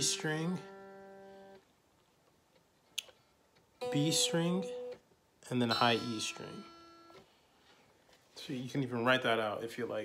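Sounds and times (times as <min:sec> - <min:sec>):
electric guitar note ringing: 0:00.0 - 0:01.6, 0:03.8 - 0:07.2.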